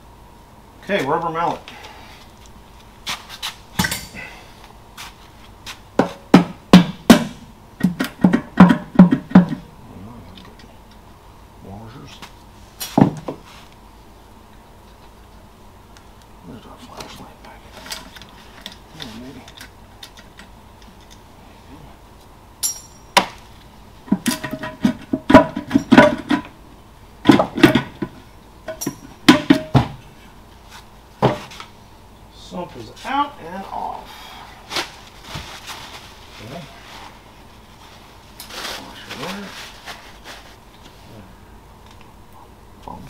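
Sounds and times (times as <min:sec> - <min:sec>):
metal engine parts clanking: 0:22.6 - 0:23.2, 0:24.1 - 0:26.5.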